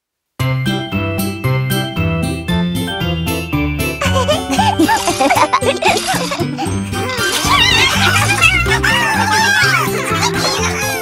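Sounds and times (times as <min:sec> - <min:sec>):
bouncy cartoon music: 0:00.4 - 0:11.0
squeaky cartoon voice: 0:07.0 - 0:11.0.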